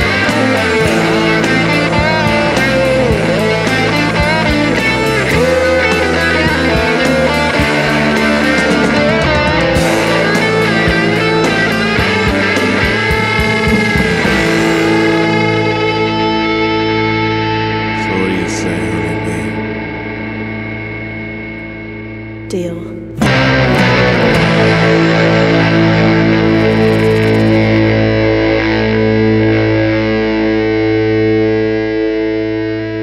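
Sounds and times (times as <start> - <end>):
guitar-led rock instrumental: 0.0 - 33.0.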